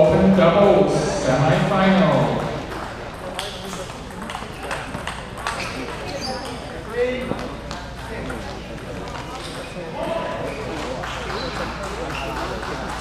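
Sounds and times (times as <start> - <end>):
table tennis balls bouncing: 1.6 - 13.0.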